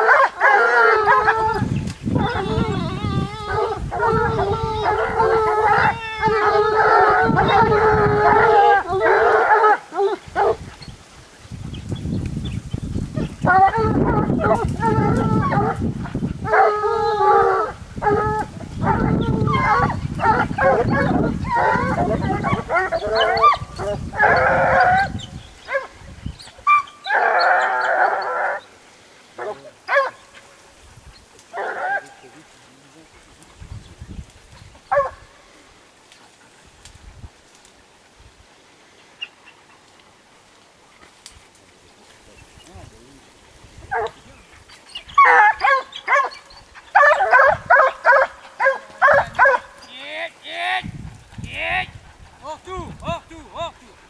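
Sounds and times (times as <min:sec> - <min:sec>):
hounds baying: 0:00.0 - 0:38.1, 0:39.0 - 0:53.0.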